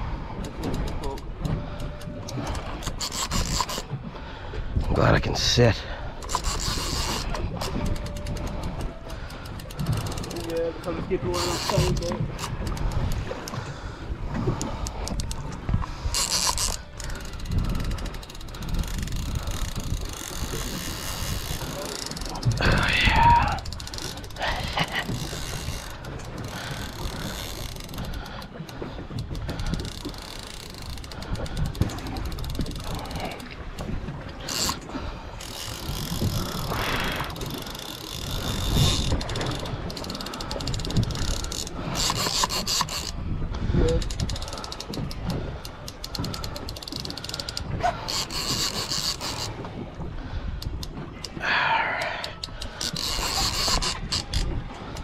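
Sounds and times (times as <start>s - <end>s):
fishing reel ratcheting: 0.4s - 3.9s, 6.2s - 13.6s, 14.6s - 28.5s, 29.1s - 43.2s, 43.9s - 49.6s, 50.6s - 55.0s.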